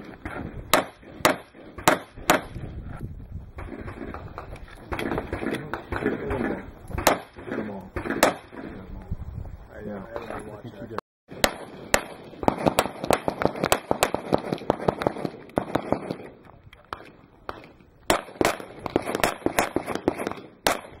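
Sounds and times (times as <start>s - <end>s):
handgun shots: 4.9s - 8.6s.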